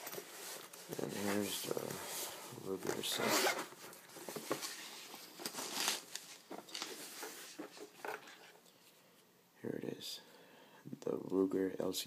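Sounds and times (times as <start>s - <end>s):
rustling in fabric case: 0.0s - 8.2s.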